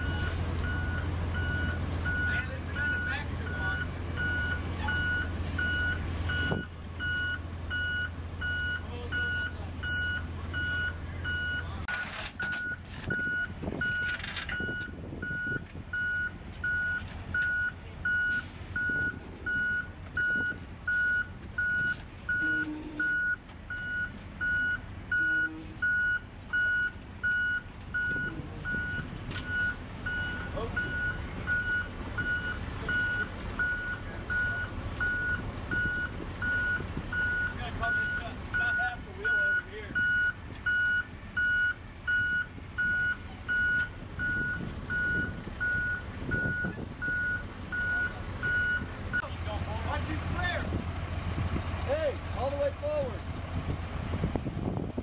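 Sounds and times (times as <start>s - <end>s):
diesel engine running: 0.0s - 55.0s
backup alarm beeping: 12.4s - 49.2s.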